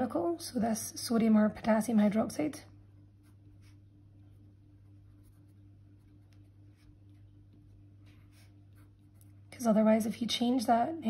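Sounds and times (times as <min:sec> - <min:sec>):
pen scratching on paper: 0:03.2 - 0:07.3, 0:08.0 - 0:09.3.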